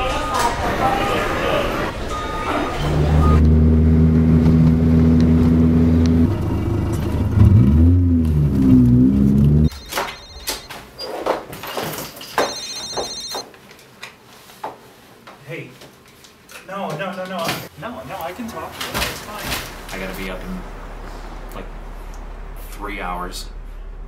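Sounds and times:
deep synthesized drone: 2.6 - 9.8, 19.5 - 24.0
phone ringing: 9.7 - 10.7, 12.2 - 13.4.

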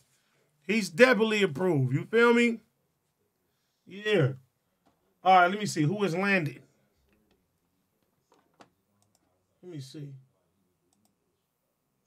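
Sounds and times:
person speaking: 0.7 - 2.6
computer mouse clicks: 8.3 - 9.3.

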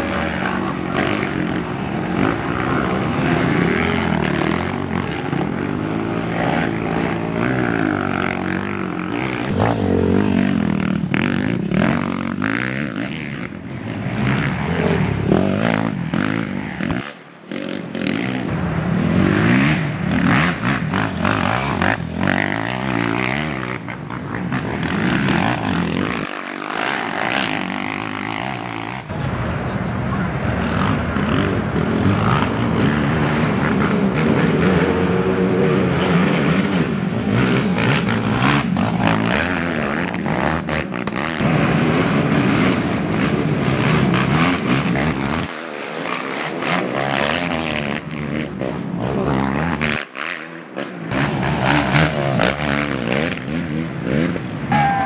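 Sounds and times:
racing quad engines revving: 0.0 - 55.0.

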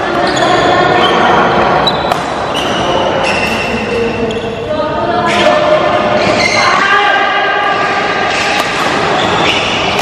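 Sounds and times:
racket hitting shuttlecock: 1.6 - 2.4, 7.8 - 10.0.

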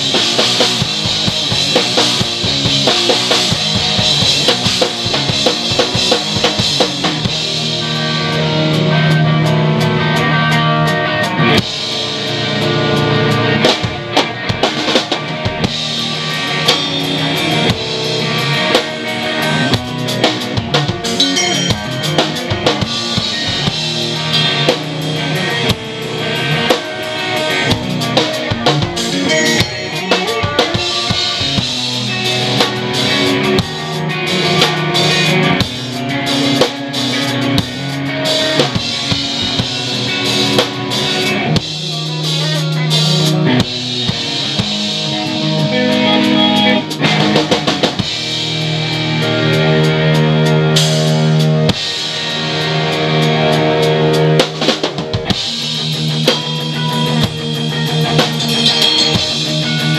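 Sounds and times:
distorted electric guitars: 0.0 - 59.9
drum kit hit hard: 19.7 - 24.9, 27.8 - 33.0.

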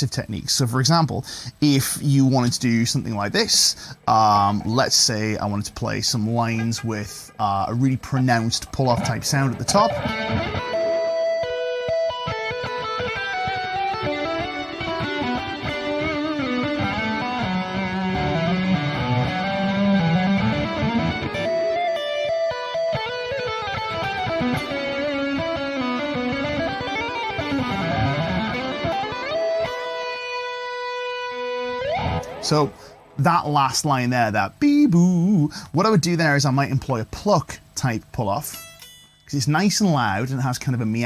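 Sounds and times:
electric guitar legato lines: 6.0 - 34.0.

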